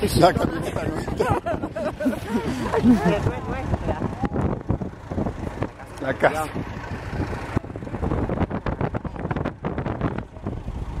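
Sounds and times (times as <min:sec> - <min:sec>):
tractor engine running: 0:00.0 - 0:11.0
wind buffeting microphone: 0:00.0 - 0:11.0.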